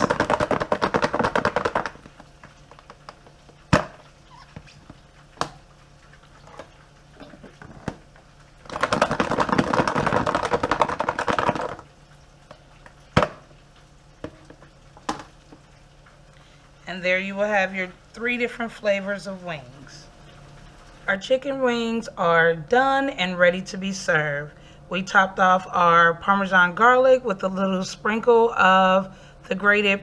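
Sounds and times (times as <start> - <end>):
food rattling in plastic container: 0.0 - 2.2, 8.7 - 11.9.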